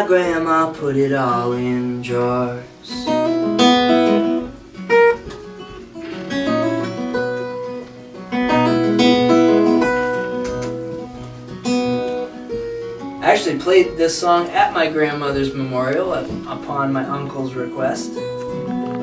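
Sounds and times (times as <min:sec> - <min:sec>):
fingerpicked acoustic guitar: 0:00.0 - 0:19.0.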